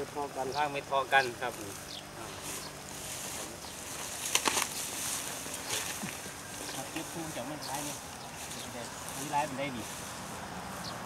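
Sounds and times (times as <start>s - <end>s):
dry straw rustling and crackling: 0.0s - 11.0s.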